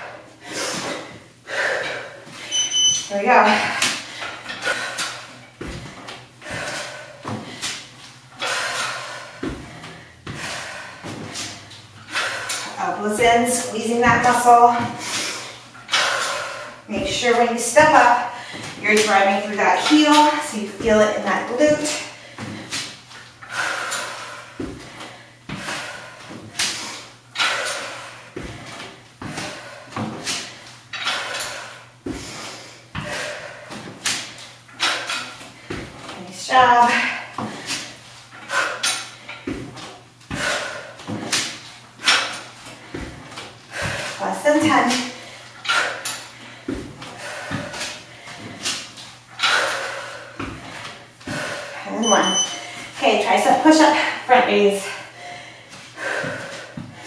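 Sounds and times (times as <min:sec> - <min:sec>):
feet thudding on a box: 0:05.6 - 0:08.0, 0:09.1 - 0:12.3, 0:24.5 - 0:26.8, 0:28.3 - 0:30.6, 0:32.0 - 0:34.4, 0:35.4 - 0:38.0, 0:39.4 - 0:45.3, 0:46.6 - 0:49.2, 0:50.3 - 0:51.6, 0:56.0 - 0:57.0
person breathing: 0:54.8 - 0:57.0.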